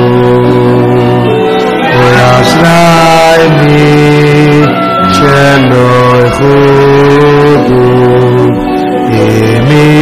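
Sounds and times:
men singing chant-like melody: 0.0s - 10.0s.

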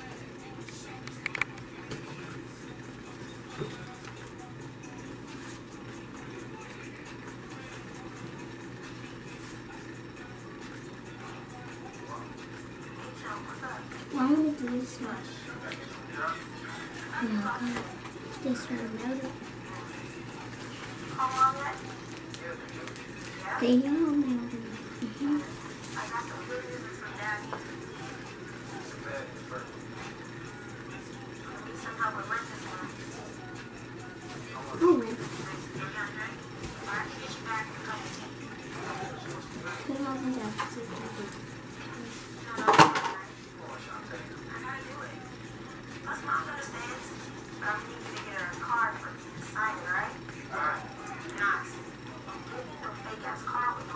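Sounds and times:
child's voice: 34.8s - 35.2s.

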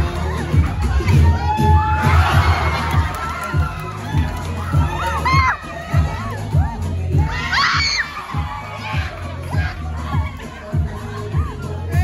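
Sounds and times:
crowd cheering and shouting: 0.0s - 12.0s
dance music with heavy bass beat: 0.0s - 12.0s.

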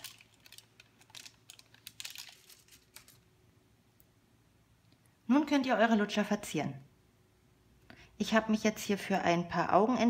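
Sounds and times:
baking paper crinkling: 0.0s - 3.3s.

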